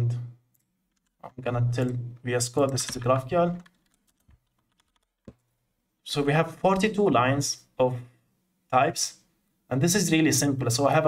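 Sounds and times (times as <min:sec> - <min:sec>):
faint keyboard keystrokes: 0:00.6 - 0:05.5.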